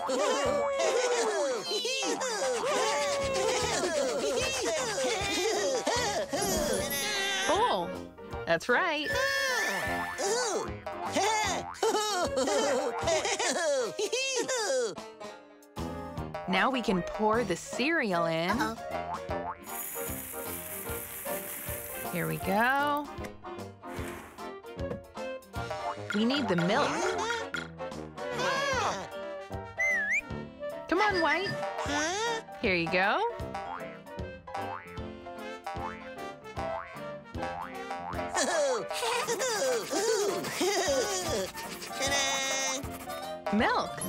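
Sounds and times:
light children's music: 0.0 - 44.0
cereal pouring into bowl: 19.7 - 22.8.

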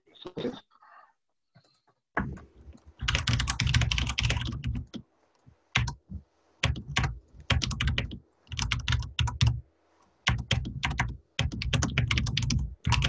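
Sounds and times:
typing on computer keyboard: 3.0 - 5.0, 5.8 - 6.0, 6.6 - 9.6, 10.2 - 13.0.

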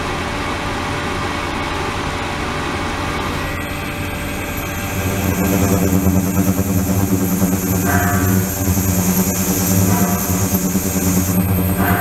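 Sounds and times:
ultrasonic tank electrical hum: 0.0 - 12.0
hiss: 3.6 - 12.0.

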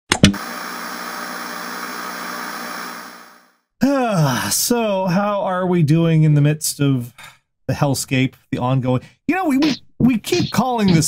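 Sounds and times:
static hiss: 0.4 - 3.4.

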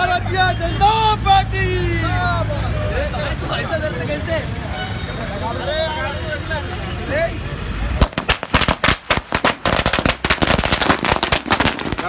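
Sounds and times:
firecrackers banging: 8.0 - 12.0.

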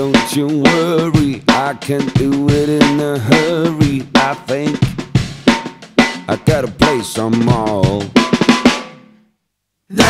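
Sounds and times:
funk band playing: 0.0 - 8.9
snare and bass drum strokes: 0.0 - 9.1.

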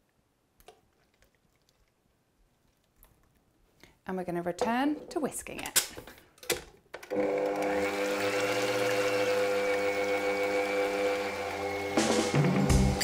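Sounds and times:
stand mixer motor whining: 7.1 - 12.4.

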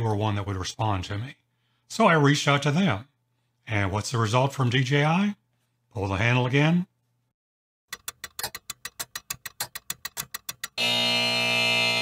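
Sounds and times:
harsh buzzer: 10.8 - 12.0.

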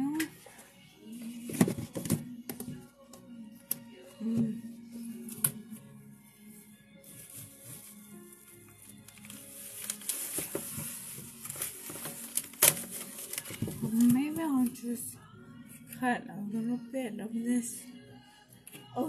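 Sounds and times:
quiet background music: 0.0 - 19.0
plastic bag crinkling: 7.0 - 14.8.

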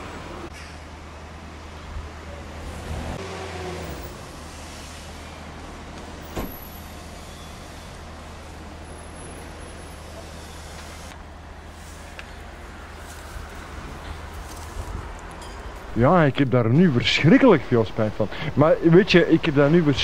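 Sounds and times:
vehicle engine rumbling: 0.0 - 20.0.

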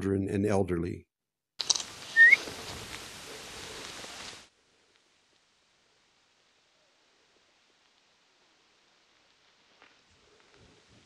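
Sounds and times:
steady outdoor hiss: 1.6 - 11.0
animal whistled chirp rising: 2.1 - 2.4.

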